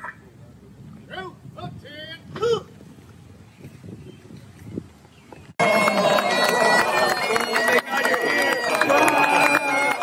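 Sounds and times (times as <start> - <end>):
bagpipes playing held notes: 5.6 - 10.0
crowd clapping: 5.6 - 10.0.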